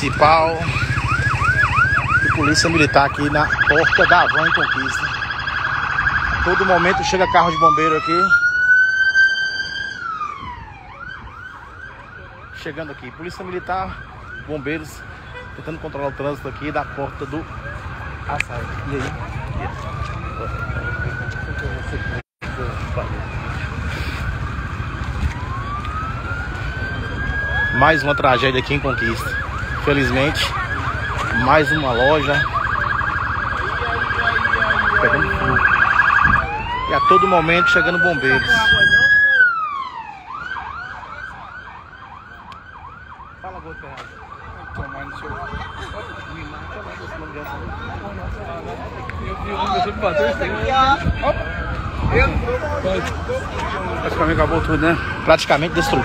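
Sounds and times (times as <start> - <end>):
siren wailing: 0.0 - 56.0.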